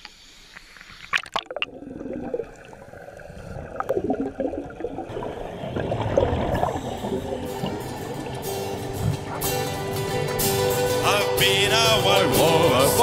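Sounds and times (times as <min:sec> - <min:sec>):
muffled underwater bubbling: 0:01.1 - 0:10.0.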